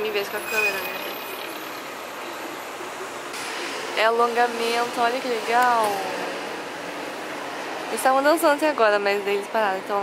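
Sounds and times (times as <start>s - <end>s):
city street traffic hiss: 0.0s - 10.0s.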